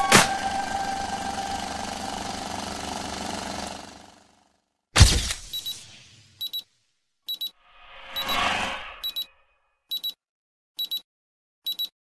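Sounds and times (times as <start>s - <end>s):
digital watch alarm beeping: 5.5s - 5.8s, 6.4s - 6.6s, 7.3s - 9.3s, 9.9s - 10.2s, 10.8s - 11.0s, 11.7s - 12.0s
whooshing swell: 7.7s - 9.2s.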